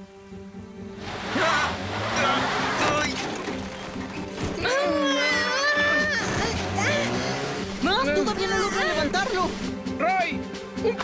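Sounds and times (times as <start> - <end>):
cartoon voices straining and crying out: 4.6 - 7.5
vehicle engine running: 6.2 - 9.6.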